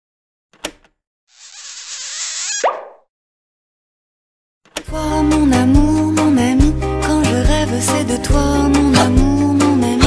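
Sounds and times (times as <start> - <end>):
cartoon whoosh: 1.3 - 3.1.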